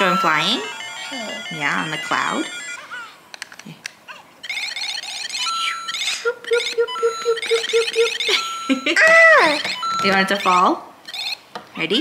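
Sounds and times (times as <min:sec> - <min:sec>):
plastic clicks: 0:03.3 - 0:04.0
chirping electronic beeps: 0:04.4 - 0:11.4
steady electronic beeping: 0:04.4 - 0:11.4.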